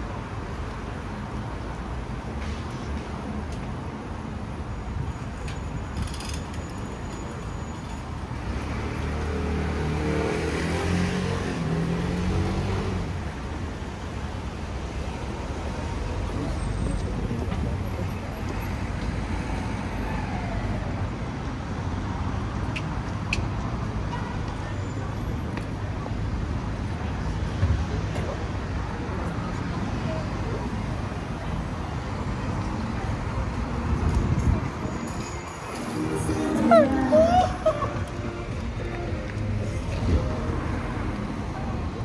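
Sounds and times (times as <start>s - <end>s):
hum of traffic: 0.0s - 42.0s
car engines passing close by: 8.2s - 23.8s.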